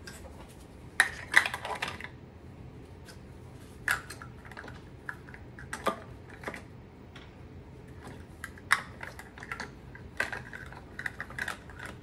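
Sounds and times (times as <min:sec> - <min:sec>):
plastic utensils clicking and clattering: 0:01.0 - 0:02.2, 0:08.0 - 0:12.0.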